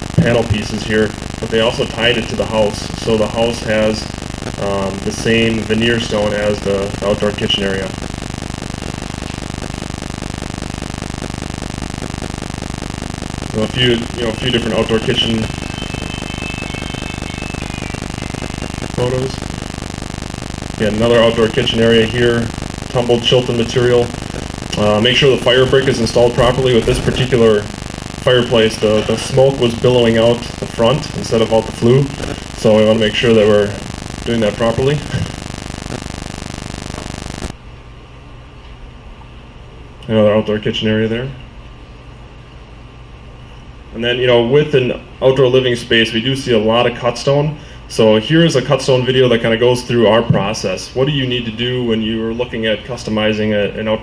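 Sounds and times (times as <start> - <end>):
pulsing machine hum: 0.0 - 37.5.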